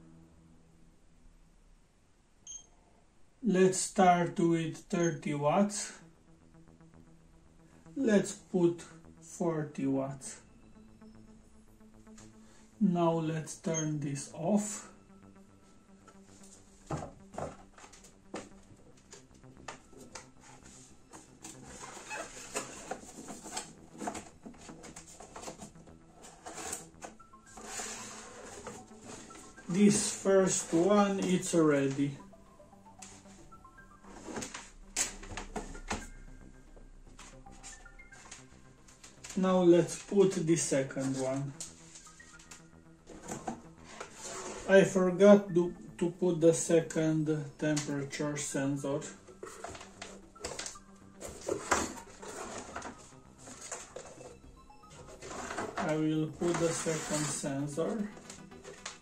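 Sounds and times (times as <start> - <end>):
cardboard boxes being handled: 20.3 - 31.5, 49.4 - 54.4.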